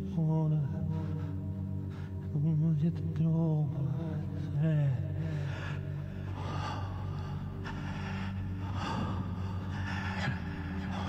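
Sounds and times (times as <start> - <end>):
low drone: 0.0 - 11.0
man breathing heavily and gasping: 5.0 - 11.0.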